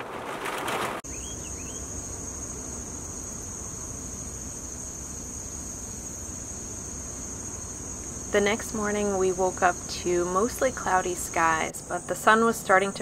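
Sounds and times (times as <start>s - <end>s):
insects trilling: 1.0s - 13.0s.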